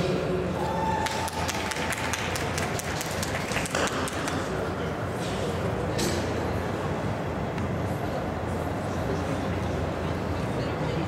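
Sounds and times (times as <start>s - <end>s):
low hall hum: 0.0s - 11.0s.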